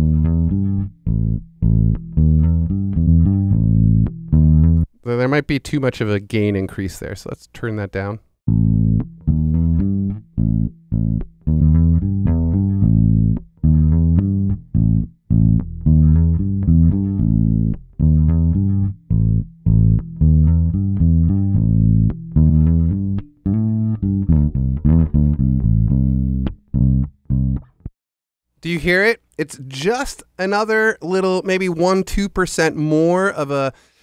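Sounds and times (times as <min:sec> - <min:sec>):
electric bass line: 0:00.0 - 0:04.9, 0:08.5 - 0:27.9.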